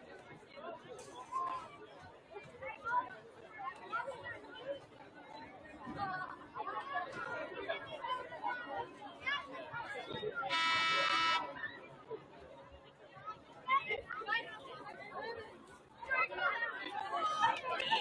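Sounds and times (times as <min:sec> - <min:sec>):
chatter of people: 0:00.0 - 0:18.0
scoreboard horn blast: 0:10.5 - 0:11.5.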